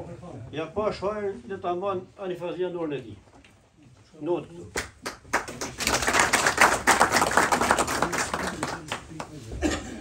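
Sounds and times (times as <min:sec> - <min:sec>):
audience clapping: 0:04.7 - 0:09.5.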